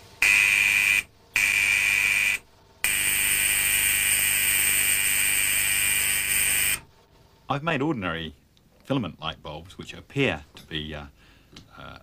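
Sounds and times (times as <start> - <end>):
spark-gap generator buzzing: 0.2 - 6.9.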